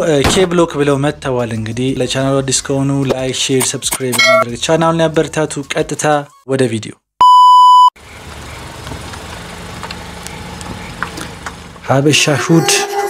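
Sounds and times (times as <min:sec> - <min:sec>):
speech: 0:00.0 - 0:07.0, 0:11.9 - 0:13.0
electronic beep: 0:03.9 - 0:04.5, 0:07.2 - 0:07.9.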